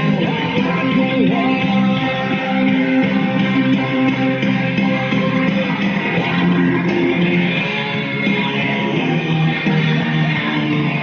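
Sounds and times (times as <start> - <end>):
electric guitar chords: 0.0 - 11.0
rock band backing track: 0.0 - 11.0.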